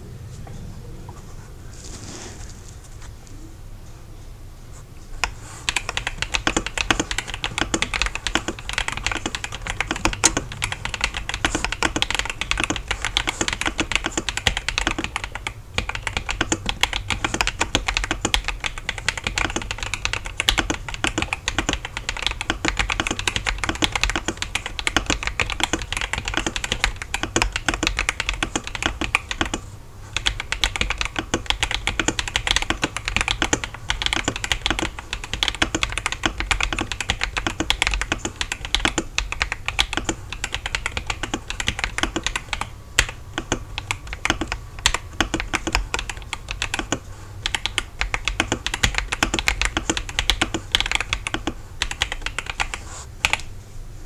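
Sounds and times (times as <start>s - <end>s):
mechanical keyboard typing: 5.2s - 53.5s.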